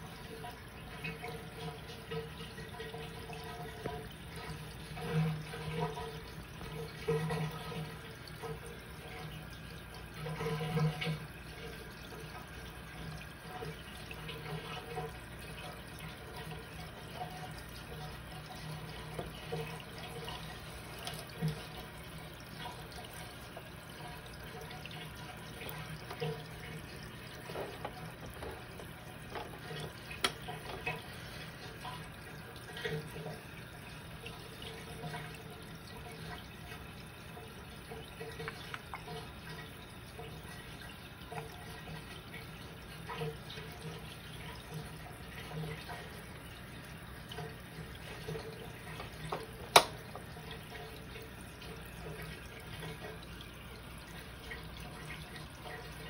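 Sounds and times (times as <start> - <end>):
aquarium water gurgling and bubbling: 0.0 - 56.0.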